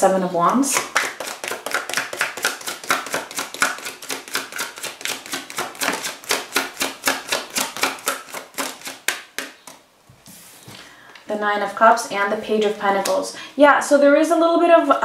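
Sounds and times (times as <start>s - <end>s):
cards being shuffled: 0.5s - 10.8s.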